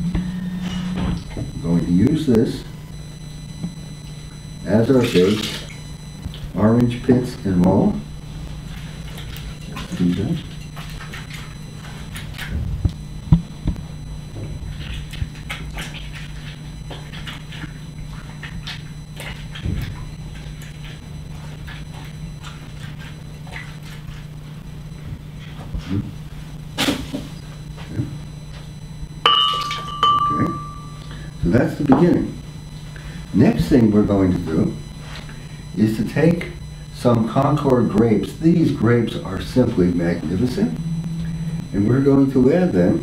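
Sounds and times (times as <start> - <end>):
steady low hum: 0.0 - 43.0
glass clinking: 29.2 - 31.0.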